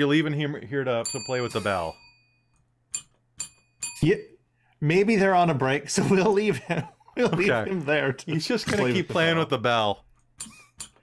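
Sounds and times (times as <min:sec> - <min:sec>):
service bell dinging: 0:01.0 - 0:04.1.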